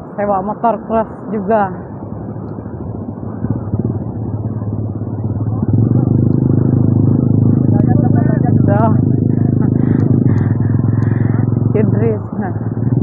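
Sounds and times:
motorcycle engine running: 1.8 - 13.0.

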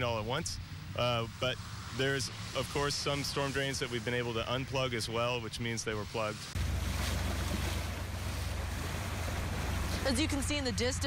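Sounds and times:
constant low rumble: 0.0 - 11.0
floodwater sloshing and splashing: 6.2 - 10.8.

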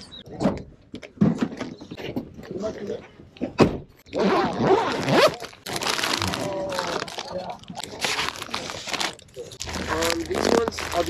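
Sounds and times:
pouch being unzipped: 4.1 - 11.0
plastic packets rustling: 4.8 - 11.0
people talking: 6.2 - 8.1, 9.3 - 11.0.

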